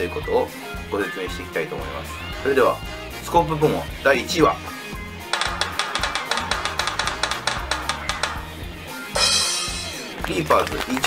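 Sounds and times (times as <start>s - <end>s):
drum roll: 5.3s - 10.0s.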